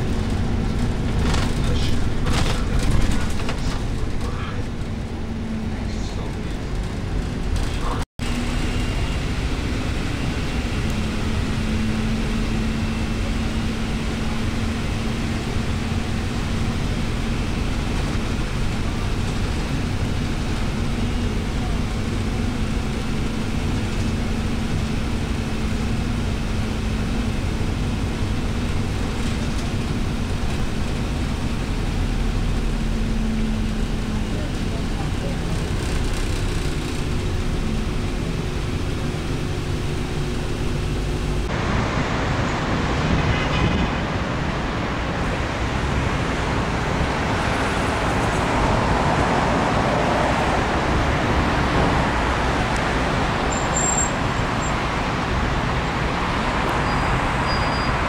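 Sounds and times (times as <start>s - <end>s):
vehicle engine and road noise: 0.0s - 58.0s.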